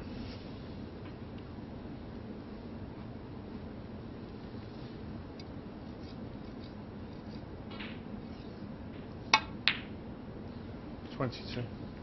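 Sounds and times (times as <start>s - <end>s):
ball hitting ball: 7.7s - 8.0s, 9.3s - 9.9s
cue tip striking ball: 7.7s - 8.0s, 9.0s - 9.9s.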